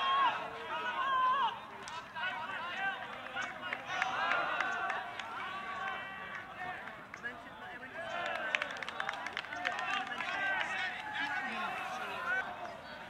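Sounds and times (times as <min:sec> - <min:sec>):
distant shouts and calls: 0:00.0 - 0:13.0.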